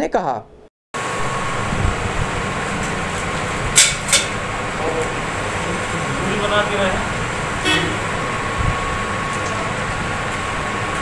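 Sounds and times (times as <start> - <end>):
faint voices: 4.8 - 8.0
short toot: 7.6 - 8.0.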